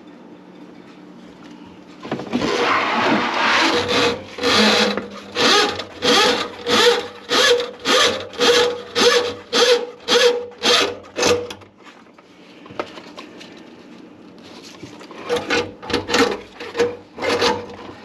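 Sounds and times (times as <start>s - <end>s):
drain auger cable rasping: 2.4s - 11.5s.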